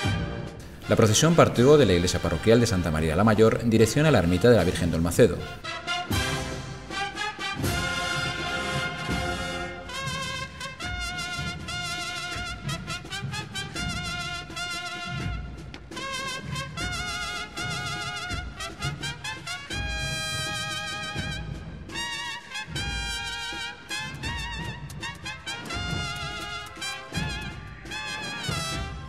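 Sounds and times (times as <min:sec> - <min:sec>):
trumpets playing held notes: 0:00.0 - 0:29.0.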